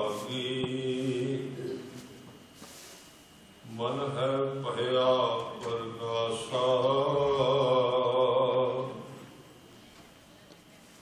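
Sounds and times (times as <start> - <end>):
man chanting into a microphone: 0.0 - 2.0, 3.6 - 9.2.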